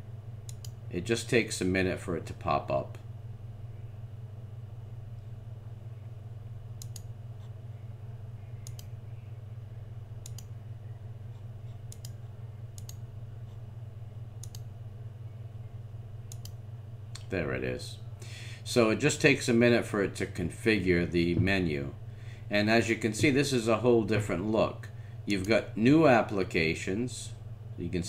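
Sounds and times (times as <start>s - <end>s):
steady low hum: 0.0s - 28.0s.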